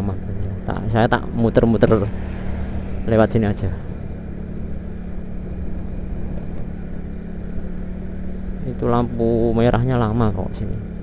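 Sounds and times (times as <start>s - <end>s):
road and wind noise: 0.0s - 11.0s
motorcycle engine running: 0.2s - 11.0s.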